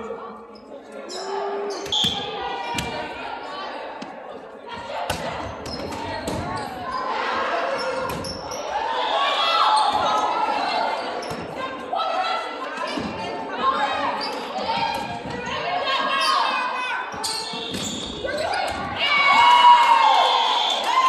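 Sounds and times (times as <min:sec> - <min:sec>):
players calling and shouting: 0:00.0 - 0:21.0.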